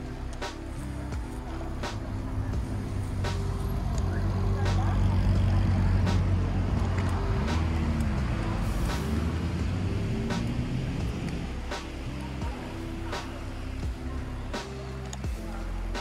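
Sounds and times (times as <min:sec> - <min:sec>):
chill-hop music with beat: 0:00.0 - 0:16.0
road traffic rumble: 0:00.0 - 0:16.0.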